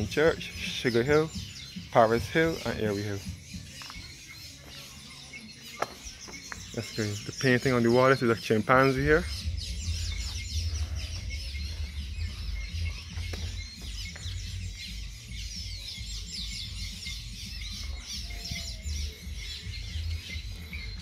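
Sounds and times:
birds chirping: 0.0s - 21.0s
low rumble: 9.2s - 13.7s.

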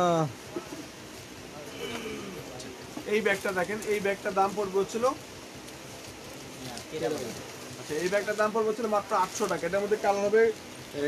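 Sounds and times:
man speaking in a low voice: 6.6s - 11.0s.

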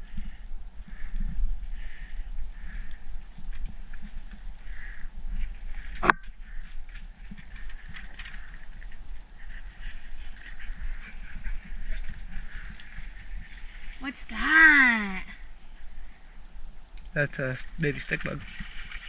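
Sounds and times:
rustling and taps of wet grass: 2.8s - 14.0s, 16.6s - 19.0s.

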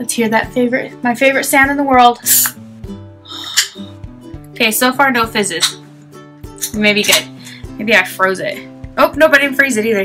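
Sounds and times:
soda can opening crack and hiss: 2.2s - 2.6s.

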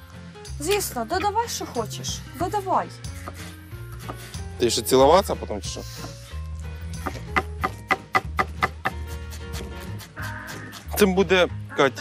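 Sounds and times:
background music with bass line: 0.0s - 12.0s
knife chopping on wooden board: 7.0s - 11.1s.

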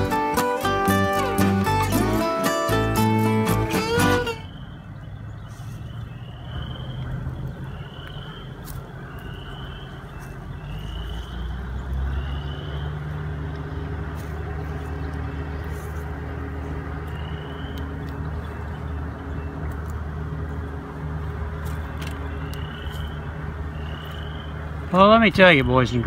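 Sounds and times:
guitar music: 0.0s - 4.5s
bird chirping: 0.0s - 20.6s, 21.6s - 26.0s.

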